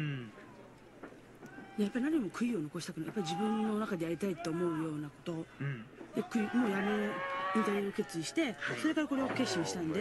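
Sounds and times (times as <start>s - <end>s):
person humming low: 0.0s - 0.4s.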